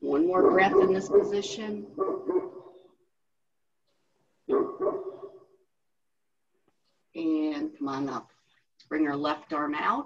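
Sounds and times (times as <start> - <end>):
dog barking: 0.4 - 2.9, 4.5 - 5.4.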